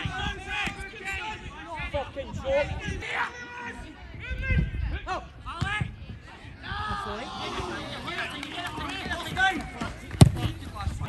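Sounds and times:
football being kicked: 10.1 - 10.6.

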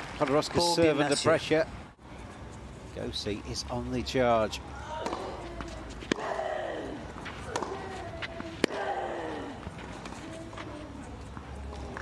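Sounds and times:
racquet striking tennis ball: 5.0 - 6.4, 7.4 - 8.9.

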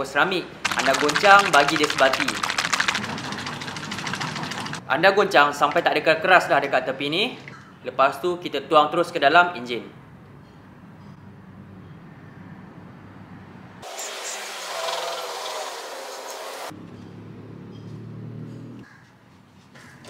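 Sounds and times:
liquid pouring and splashing: 0.6 - 4.8.

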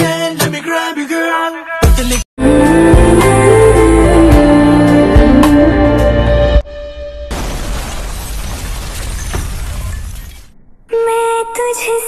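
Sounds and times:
song with music: 0.0 - 6.8
loud burst of noise: 7.3 - 10.5.

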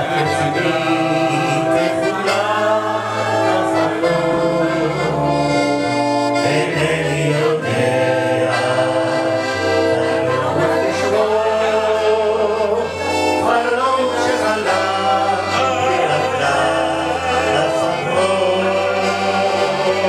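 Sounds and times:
electronic keyboard: 0.0 - 20.0
man singing into a microphone: 0.0 - 20.0
piano accordion: 0.0 - 20.0.

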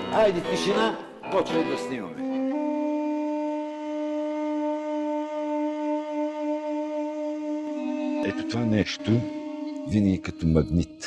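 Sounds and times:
duduk holding long note: 2.1 - 10.8.

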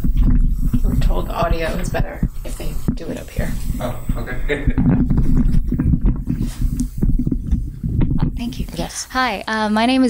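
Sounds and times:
knocks and bumps on microphone: 0.0 - 3.0, 4.1 - 8.4
microphone handling rumble: 0.0 - 8.9.

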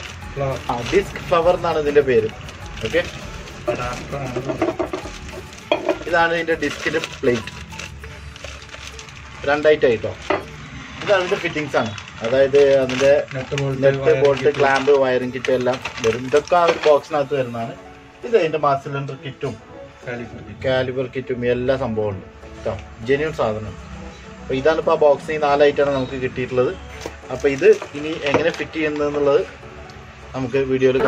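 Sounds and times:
sharp crackle: 0.0 - 16.9
plastic packaging crinkling: 0.0 - 17.4, 26.9 - 29.5.

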